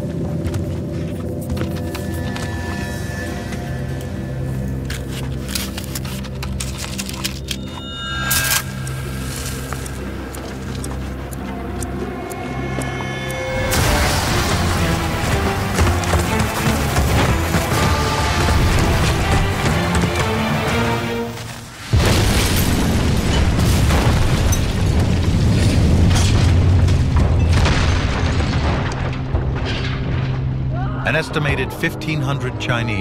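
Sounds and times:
dramatic music score: 0:00.0 - 0:33.0
booming explosions: 0:21.9 - 0:30.6.

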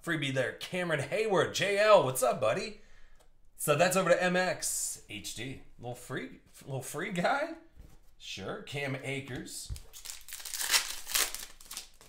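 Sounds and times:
foil wrapper tearing and crinkling: 0:09.8 - 0:12.0.

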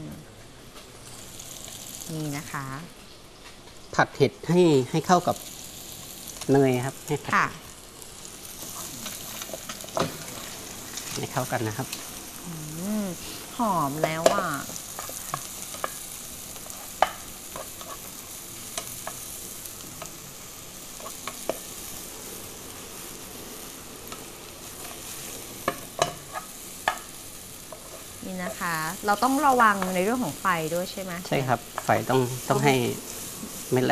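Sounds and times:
food sizzling in frying pan: 0:00.0 - 0:33.9.

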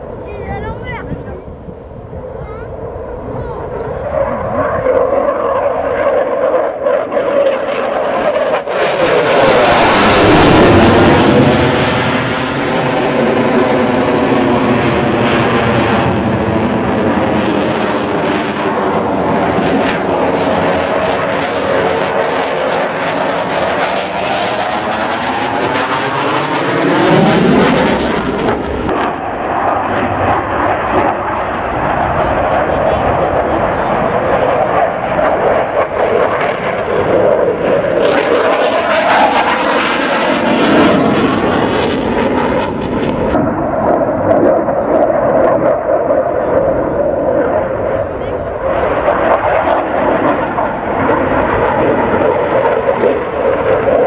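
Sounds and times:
fighter jet engines roaring overhead: 0:00.0 - 0:54.0.

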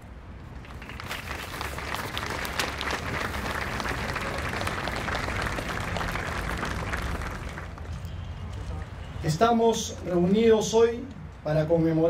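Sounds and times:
crowd applauding: 0:00.6 - 0:08.0.

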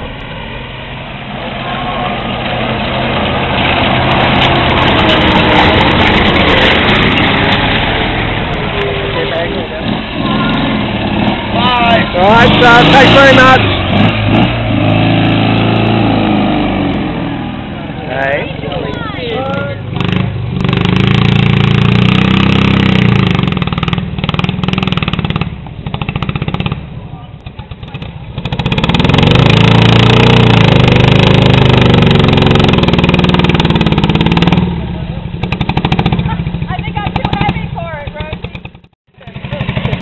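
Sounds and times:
vehicle engine revving: 0:00.0 - 0:40.0.

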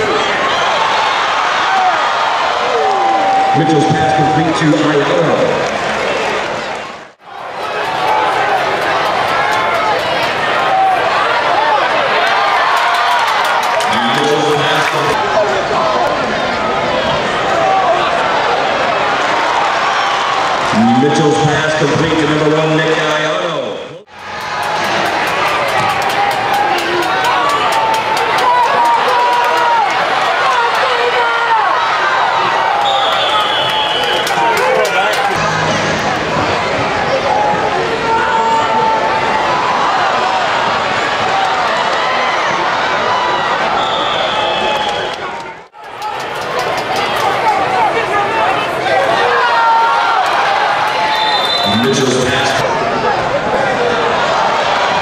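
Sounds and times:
crowd shouting and cheering: 0:00.0 - 0:55.0
scattered clapping: 0:07.6 - 0:10.9, 0:12.2 - 0:15.2, 0:24.1 - 0:31.2, 0:32.7 - 0:35.4, 0:44.7 - 0:48.2.

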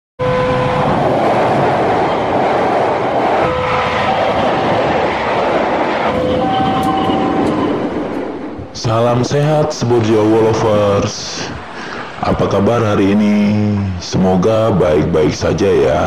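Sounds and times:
train rushing past on rails: 0:00.2 - 0:12.1
short steady tones: 0:06.1 - 0:08.6.

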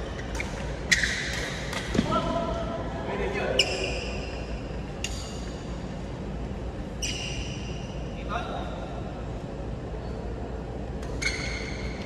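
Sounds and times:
court shoes squeaking: 0:00.0 - 0:02.1, 0:03.4 - 0:06.1, 0:06.7 - 0:08.2, 0:09.9 - 0:12.0.

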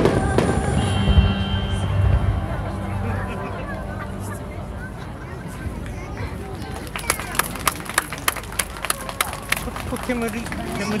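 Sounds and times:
crowd murmur: 0:00.0 - 0:11.0
hand claps: 0:06.8 - 0:10.6.

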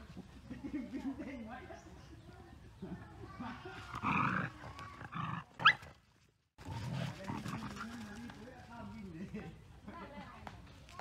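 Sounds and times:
dogs growling: 0:03.9 - 0:05.7, 0:06.6 - 0:08.0.

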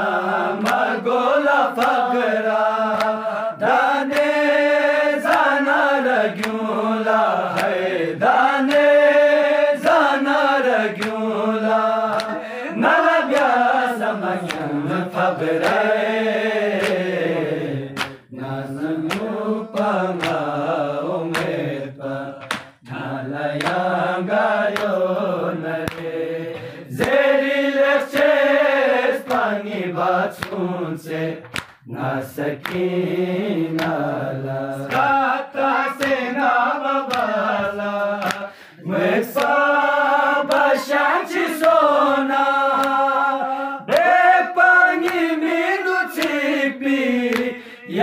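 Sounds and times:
man chanting a lament: 0:00.0 - 0:48.0
sharp rhythmic beat: 0:07.4 - 0:28.5
man chanting: 0:16.5 - 0:23.6, 0:31.9 - 0:39.3, 0:40.2 - 0:48.0.

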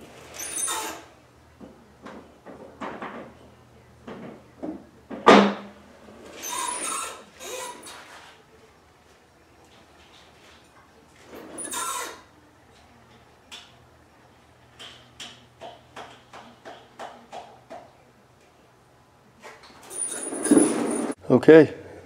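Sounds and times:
metal parts knocking and scraping: 0:19.8 - 0:21.2.

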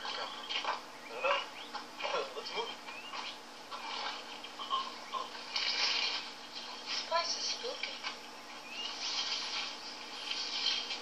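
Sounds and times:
film soundtrack through tv speaker: 0:00.0 - 0:11.0.

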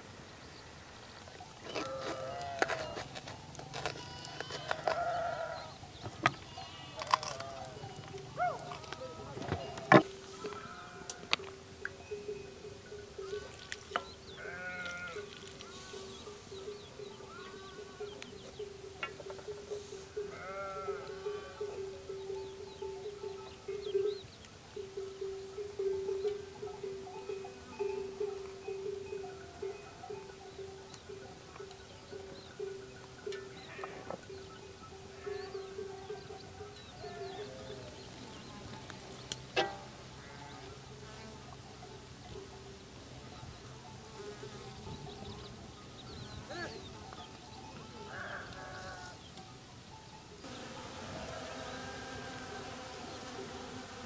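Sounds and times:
livestock bleating: 0:01.6 - 0:11.4, 0:14.3 - 0:16.4, 0:17.1 - 0:18.4, 0:20.1 - 0:21.9, 0:33.6 - 0:34.2, 0:40.1 - 0:41.4, 0:47.8 - 0:49.2, 0:50.5 - 0:53.5.

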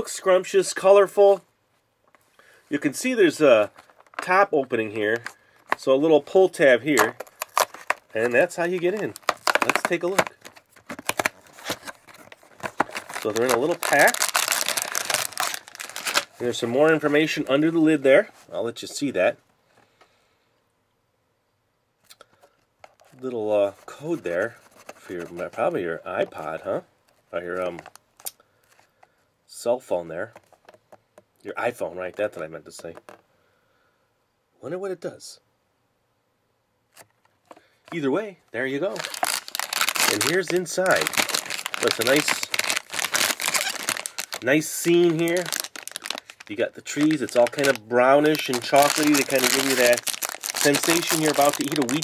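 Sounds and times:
plastic snack pouch crinkling: 0:03.0 - 0:17.8, 0:22.1 - 0:26.6, 0:27.5 - 0:28.9, 0:38.9 - 0:52.0.

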